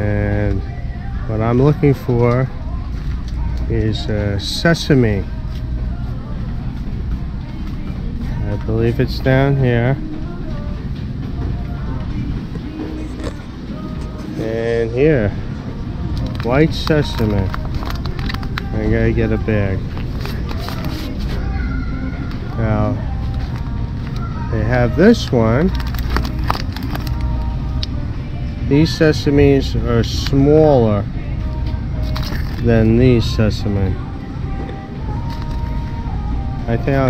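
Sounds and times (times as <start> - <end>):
faint voices of shoppers: 0.0 - 37.0
steady low hum: 0.0 - 37.0
plastic bag crinkling: 16.2 - 18.8, 19.4 - 21.4, 25.6 - 27.4, 32.0 - 32.7.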